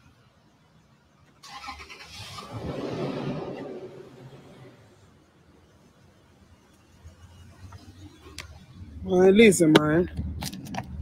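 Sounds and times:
vehicle passing by: 0:02.2 - 0:05.1.

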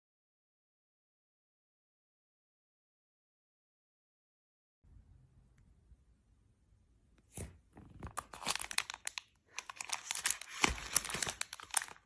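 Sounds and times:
plastic wrapping crinkling: 0:07.4 - 0:12.0.

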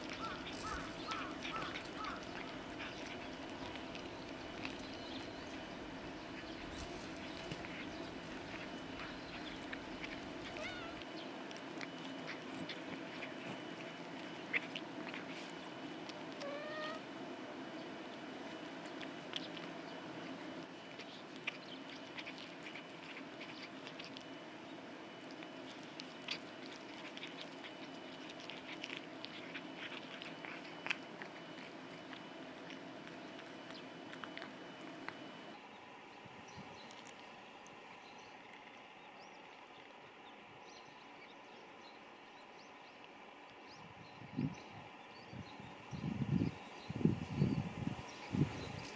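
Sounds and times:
teeth and tongue clicks: 0:00.0 - 0:16.7, 0:18.1 - 0:20.0, 0:20.6 - 0:24.4, 0:25.2 - 0:35.5
cats chewing wetly: 0:00.0 - 0:35.6, 0:36.4 - 0:43.7, 0:44.6 - 0:48.9.

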